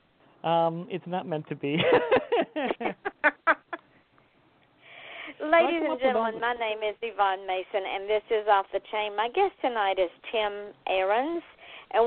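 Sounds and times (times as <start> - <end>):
person laughing: 1.8 - 3.8
faint breathy hiss: 4.0 - 5.8, 11.4 - 12.0.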